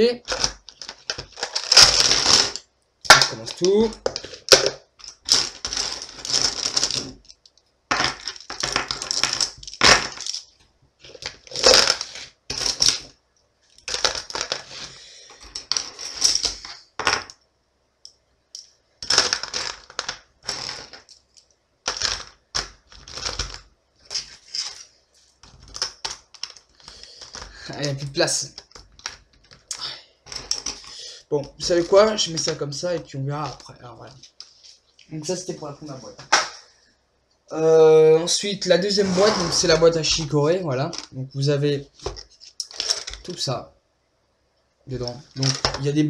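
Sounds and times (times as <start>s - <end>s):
plastic pens clattering: 0.2s - 13.1s, 13.7s - 17.4s, 18.6s - 32.6s, 40.9s - 41.2s, 42.0s - 43.4s, 45.4s - 45.9s.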